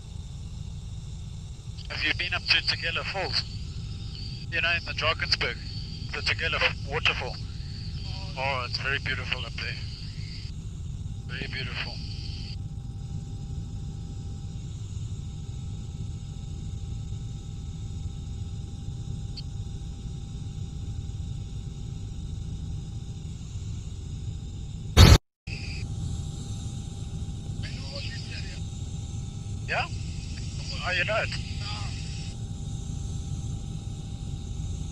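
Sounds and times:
helicopter rumble inside cabin: 0.0 - 34.9.

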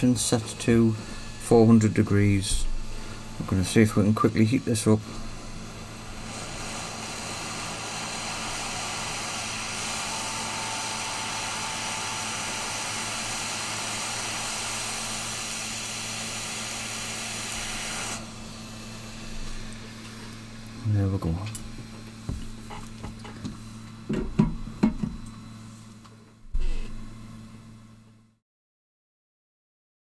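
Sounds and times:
hot air blower hissing: 0.0 - 27.9.

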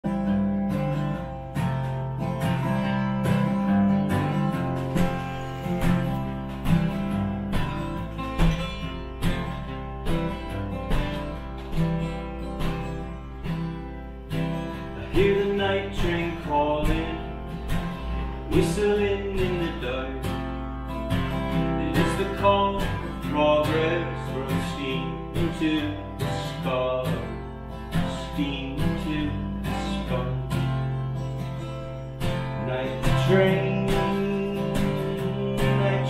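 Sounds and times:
acoustic guitar strumming chords: 0.0 - 36.0.

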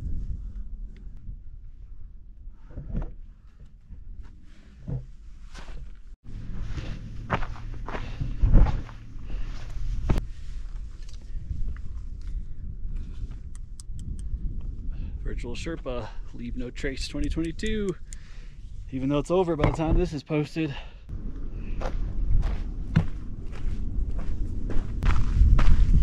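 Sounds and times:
wind rumble on microphone: 0.0 - 5.4, 6.3 - 20.0, 21.1 - 26.0.

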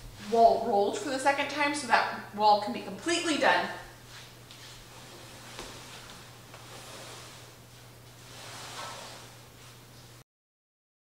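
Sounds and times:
low steady hum: 0.0 - 10.2
fabric rustling and sliding on floor: 4.0 - 10.2.

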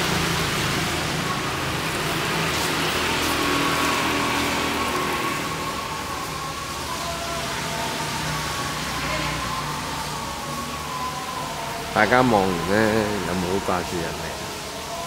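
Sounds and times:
pond fountain splashing: 0.0 - 15.0.

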